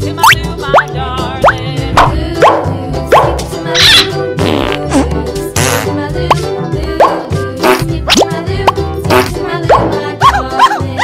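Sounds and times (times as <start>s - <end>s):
upbeat children's music: 0.0s - 11.0s.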